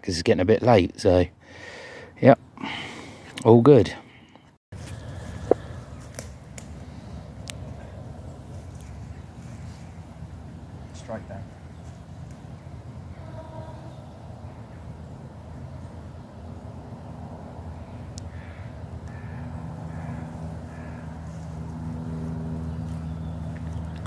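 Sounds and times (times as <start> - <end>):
vehicle engine hum: 4.2 - 24.0
crows cawing: 18.2 - 21.6.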